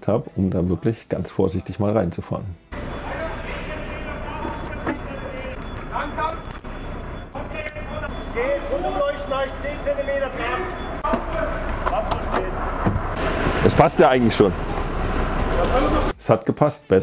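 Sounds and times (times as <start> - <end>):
diesel engine running: 2.7 - 16.1
people calling out: 7.2 - 12.6.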